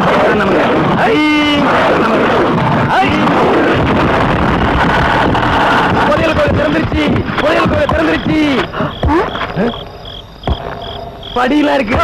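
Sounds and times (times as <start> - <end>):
person speaking: 6.0 - 10.0, 11.3 - 12.0
sharp knock: 6.0 - 12.0
cricket chirps: 6.1 - 12.0.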